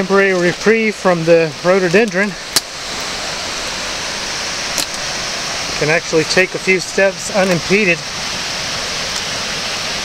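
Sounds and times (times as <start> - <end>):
water rushing over cascades: 0.0 - 10.0.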